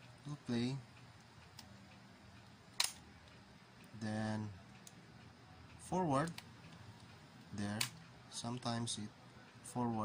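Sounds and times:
cassette recorder motor hum: 0.0s - 10.0s.

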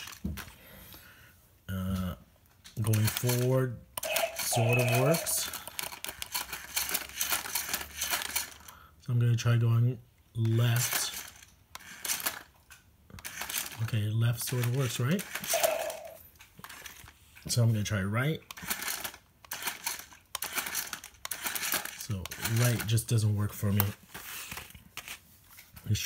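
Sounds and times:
toy robot gears rattling and clicking: 2.8s - 8.7s, 10.7s - 17.6s, 18.4s - 25.2s.

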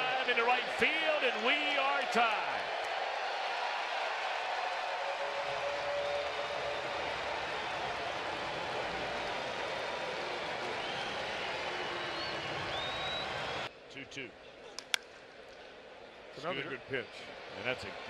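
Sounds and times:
crowd cheering: 0.0s - 13.7s, 14.7s - 18.0s.

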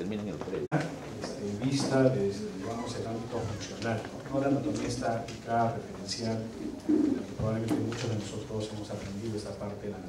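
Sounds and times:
man lecturing: 0.0s - 10.0s.

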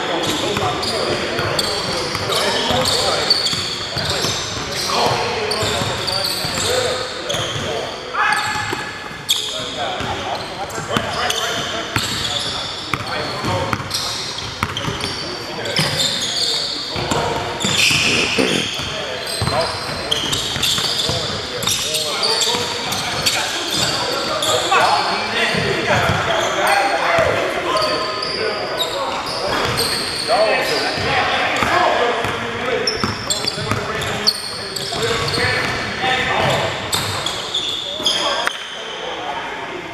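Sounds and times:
players calling out: 17.6s - 19.1s.

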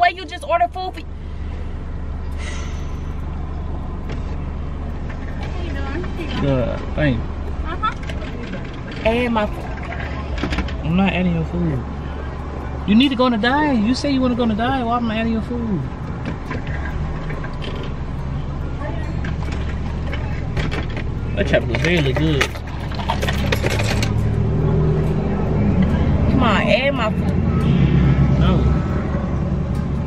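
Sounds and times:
car engine idling: 0.0s - 30.0s.

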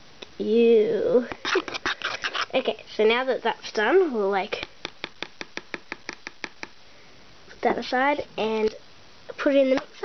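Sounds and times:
knife tapping plastic bowl: 4.8s - 6.8s.

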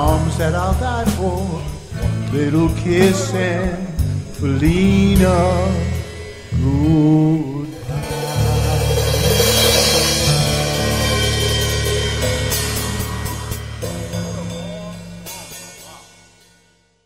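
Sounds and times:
live band holding chords: 0.0s - 16.7s
cymbals crashing: 4.7s - 16.8s.

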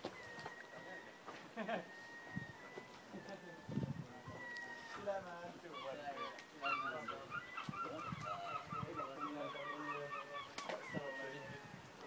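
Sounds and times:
flock of birds calling: 0.0s - 12.0s.

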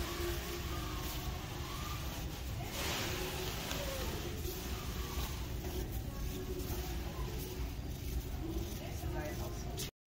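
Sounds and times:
shopping cart wheels rumbling: 0.0s - 9.9s.

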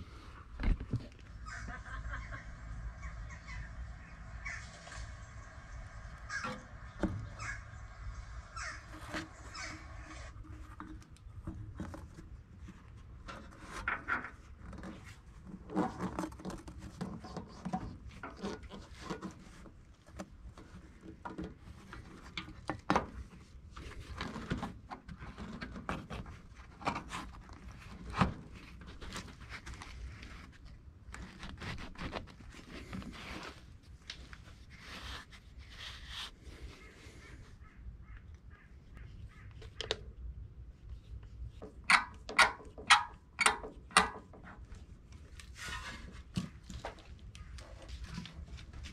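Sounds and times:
rubber hose rubbing and scraping: 3.0s - 48.9s.

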